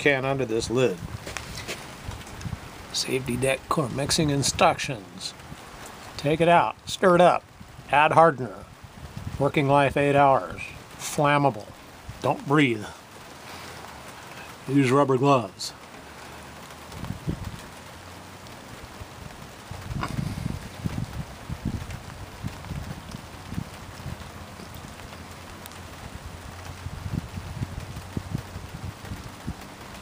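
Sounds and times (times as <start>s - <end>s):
wind buffeting microphone: 0.0s - 6.9s, 7.5s - 10.8s, 16.9s - 17.8s, 18.9s - 25.1s, 26.0s - 30.0s
faint steady hiss: 0.0s - 30.0s.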